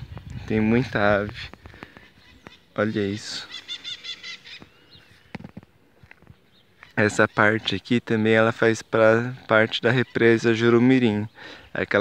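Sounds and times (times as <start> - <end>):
sharp high bird calls: 1.7 - 5.6, 6.3 - 7.8.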